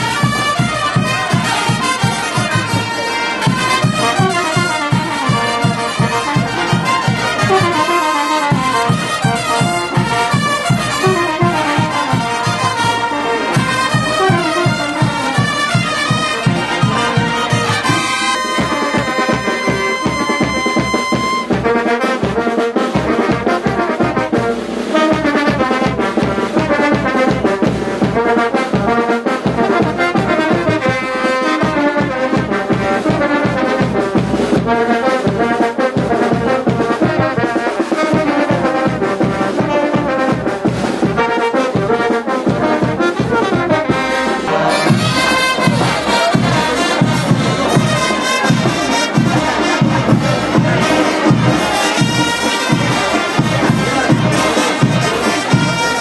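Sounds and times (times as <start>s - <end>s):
brass band playing dance tune: 0.0s - 56.0s.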